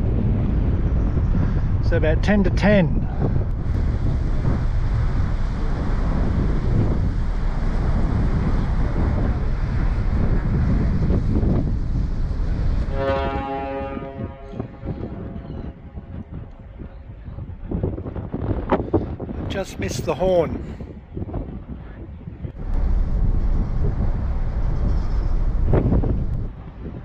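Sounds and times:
wind on microphone: 0.0 - 27.0
ship wake churning: 3.0 - 16.8, 22.6 - 27.0
ship horn blast: 12.4 - 16.1.

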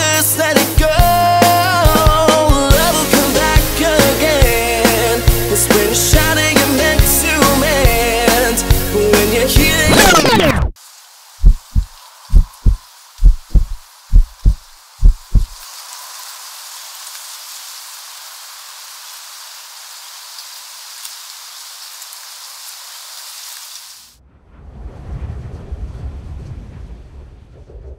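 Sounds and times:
rain-like hiss: 10.8 - 24.2
deep thumps: 11.4 - 15.6
low rumble: 11.4 - 15.6, 24.2 - 27.9.

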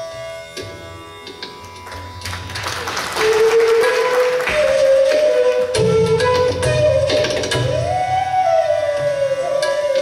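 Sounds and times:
flute long held notes: 3.2 - 10.0
hand-drum strokes: 3.3 - 10.0.

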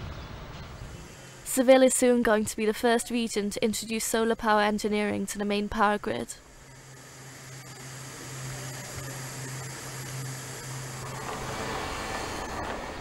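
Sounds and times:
machinery hum and hiss: 0.0 - 13.0
low droning tone: 6.4 - 12.8.

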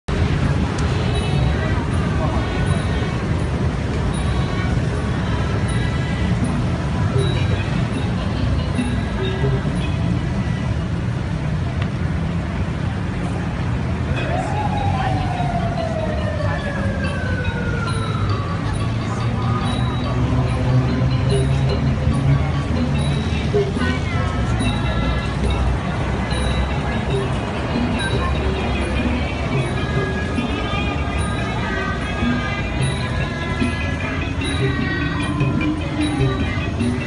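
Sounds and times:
crowd chatter: 0.0 - 37.0
traffic rumble: 0.0 - 37.0.

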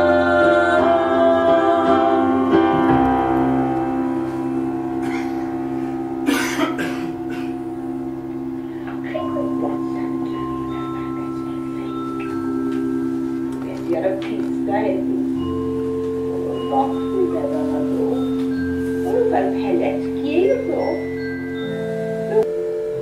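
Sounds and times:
women singing: 0.0 - 3.7
held accompaniment chord: 0.0 - 23.0.

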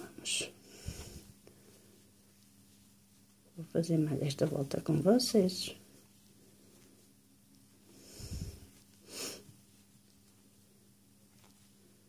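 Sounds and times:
faint steady hum: 0.0 - 12.0
breath out through nose: 8.0 - 9.4.

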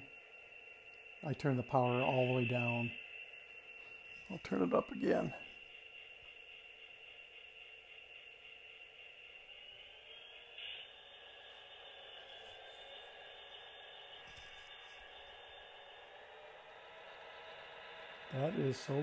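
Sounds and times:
model locomotive motor whine: 0.0 - 19.0.

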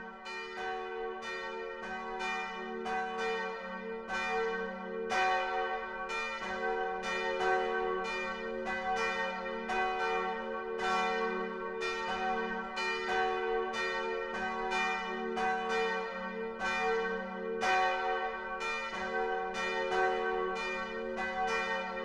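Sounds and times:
bells ringing in a peal: 0.0 - 22.0.

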